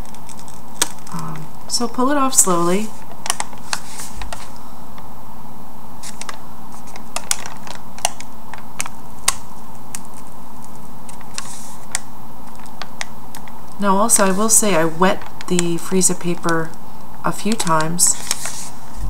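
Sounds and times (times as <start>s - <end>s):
steady hum: 0.0s - 19.0s
paper peeling with crisp crackles: 6.0s - 16.8s, 17.5s - 19.0s.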